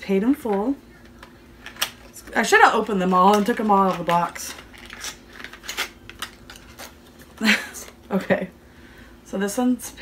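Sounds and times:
woman's voice: 0.0 - 0.8, 2.2 - 4.6, 7.4 - 8.5, 9.3 - 10.0.

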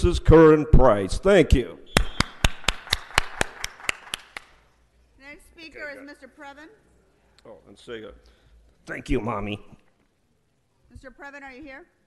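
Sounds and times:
person clapping: 1.9 - 4.6.

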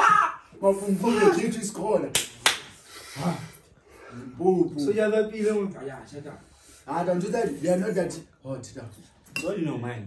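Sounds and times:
hand claps or snaps: 2.1 - 2.8.

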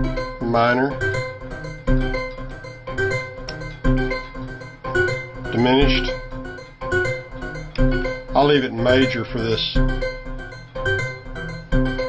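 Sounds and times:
synthesizer notes: 0.0 - 12.0.

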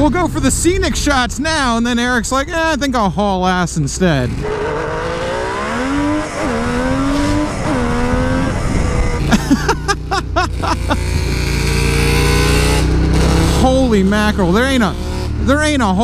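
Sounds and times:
motorcycle engine accelerating: 4.2 - 16.0.

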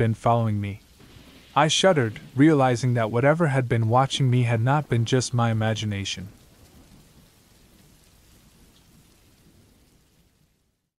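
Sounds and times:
faint steady rain: 0.0 - 10.9.

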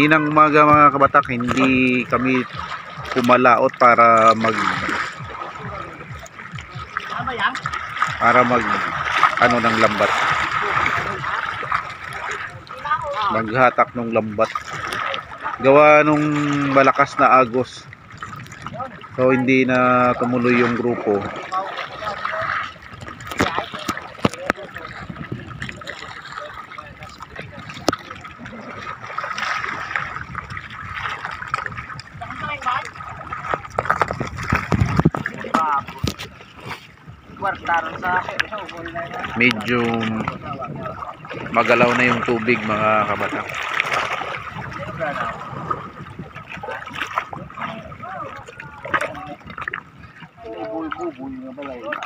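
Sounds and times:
men talking: 0.0 - 6.2, 8.1 - 11.4, 13.3 - 17.9, 18.7 - 22.3, 37.3 - 43.6
seawater splashing and trickling: 0.0 - 52.0
water lapping against a raft: 0.0 - 52.0.

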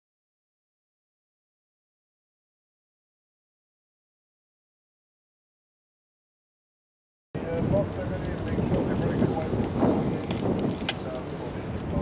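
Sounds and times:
people talking: 7.4 - 12.0
wind buffeting microphone: 7.4 - 12.0.

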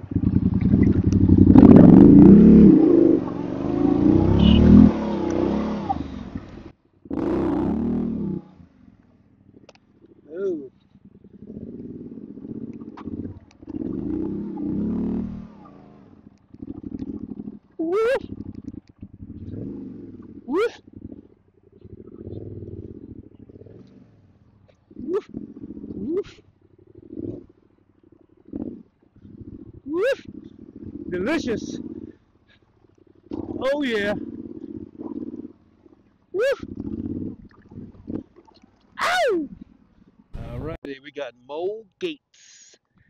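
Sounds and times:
sharp engine revs: 0.0 - 8.8, 11.4 - 21.2, 30.2 - 32.1
motorcycle engine under load: 0.0 - 35.8.

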